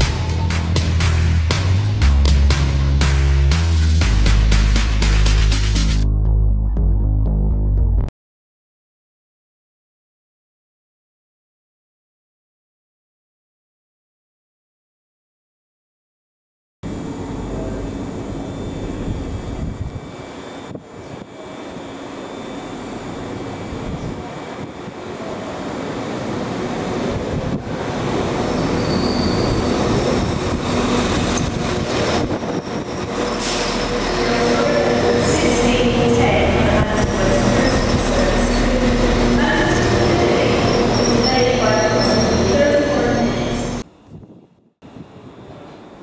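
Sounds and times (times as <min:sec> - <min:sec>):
diesel train arriving: 0:00.0 - 0:06.0, 0:16.9 - 0:44.0, 0:44.8 - 0:46.0
high wheel squeals: 0:28.3 - 0:30.3, 0:30.9 - 0:36.2, 0:36.9 - 0:43.8.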